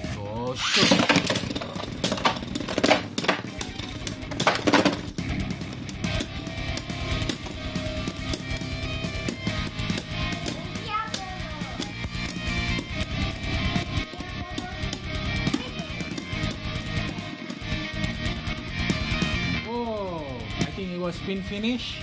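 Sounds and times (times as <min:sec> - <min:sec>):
spinning tops whirring and clashing: 0:00.6 - 0:13.7
background music with beat: 0:01.1 - 0:22.0.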